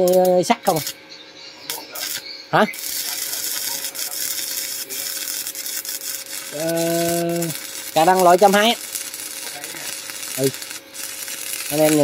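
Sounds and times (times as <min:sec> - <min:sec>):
welding arc crackling and sizzling: 0:00.0 - 0:01.1, 0:01.7 - 0:12.0.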